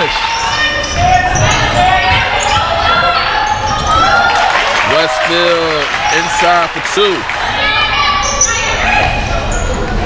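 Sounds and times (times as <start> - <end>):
sneaker squeaks: 0.0 - 4.1, 8.2 - 10.0.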